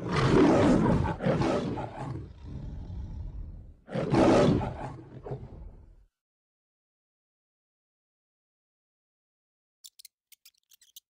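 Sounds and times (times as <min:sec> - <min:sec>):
lion roaring: 0:00.0 - 0:06.0.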